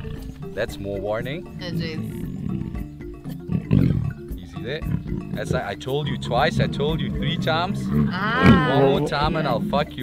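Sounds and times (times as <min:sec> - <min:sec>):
background music: 0:00.0 - 0:10.0
lion growling low: 0:02.0 - 0:10.0.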